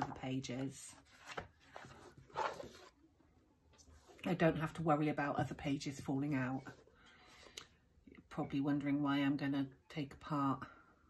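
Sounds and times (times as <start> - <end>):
book pages and cover rustling: 0.0 - 3.0.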